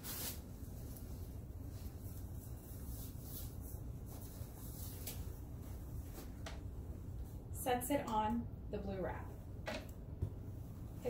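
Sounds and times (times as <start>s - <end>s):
gloved hands rustling: 0.0s - 6.7s
low steady hum: 0.0s - 11.0s.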